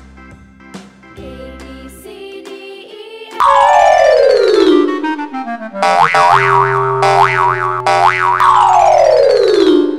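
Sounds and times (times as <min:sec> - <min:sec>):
falling run of cartoon notes: 0:03.4 - 0:09.9
warbling pitch glides: 0:03.4 - 0:09.9
steady low tone: 0:03.5 - 0:09.0.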